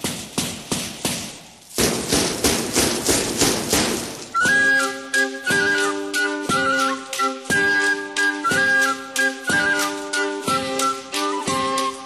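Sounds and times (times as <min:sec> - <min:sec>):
percussion beat: 0:00.0 - 0:12.0.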